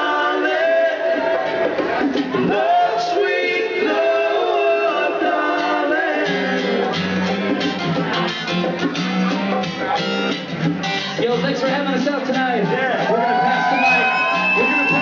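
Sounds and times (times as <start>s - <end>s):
voices singing: 0.0s - 8.2s, 13.0s - 15.0s
strummed acoustic guitars: 0.0s - 13.6s.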